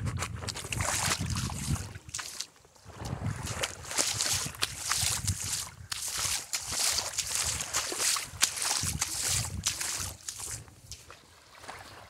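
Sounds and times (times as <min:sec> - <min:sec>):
wind buffeting microphone: 0:00.0 - 0:02.1, 0:02.9 - 0:11.0
small waves washing on shore: 0:00.0 - 0:12.0.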